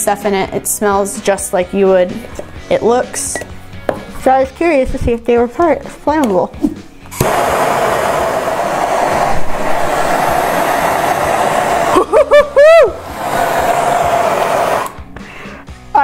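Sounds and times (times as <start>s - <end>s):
gas torch hissing: 7.1s - 15.6s.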